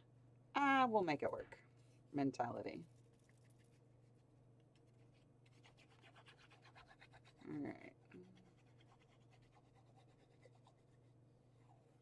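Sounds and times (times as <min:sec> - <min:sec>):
low steady hum: 0:00.0 - 0:05.8, 0:06.7 - 0:12.0.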